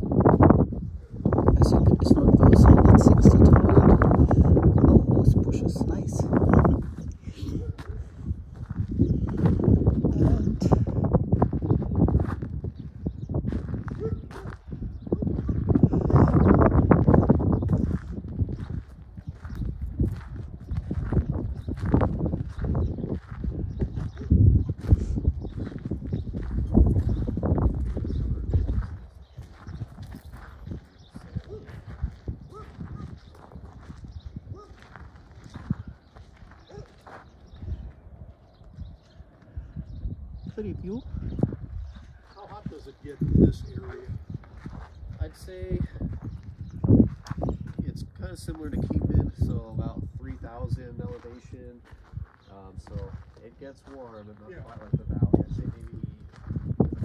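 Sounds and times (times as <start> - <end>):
wind buffeting microphone: 0.0 - 57.0
footsteps on gravel: 5.9 - 39.6, 41.0 - 47.8, 51.2 - 57.0.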